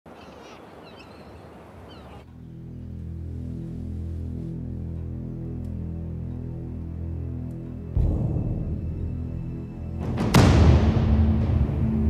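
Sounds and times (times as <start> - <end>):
bird chirps: 0.1 - 2.6
steady low background noise: 0.1 - 12.0.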